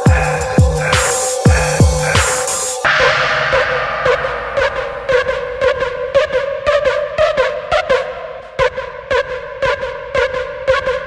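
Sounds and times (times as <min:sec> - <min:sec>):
drum and bass music: 0:00.0 - 0:11.0
heavy sliding bass: 0:00.1 - 0:06.6
held ringing synth tone: 0:02.8 - 0:06.5.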